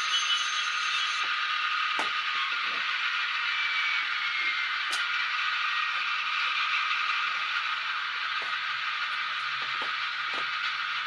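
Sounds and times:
small motors and gears whirring: 0.0 - 11.0.

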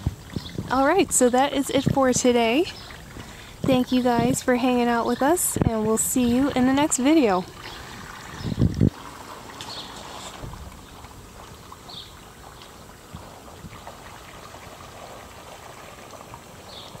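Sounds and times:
water trickling and lapping: 0.0 - 17.0.

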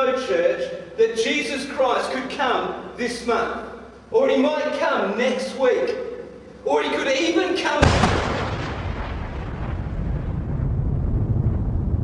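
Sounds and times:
heavy low rumble: 7.8 - 12.0
loud boom: 7.8 - 12.0.

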